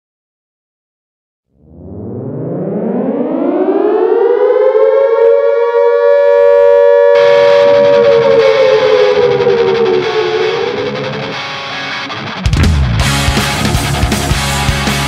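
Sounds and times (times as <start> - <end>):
air-raid siren wailing: 1.6 - 12.4
distorted heavy metal guitar music: 7.0 - 15.0.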